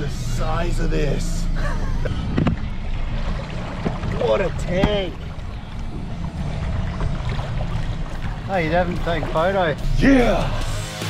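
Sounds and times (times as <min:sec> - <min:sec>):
wind buffeting microphone: 0:01.7 - 0:10.4.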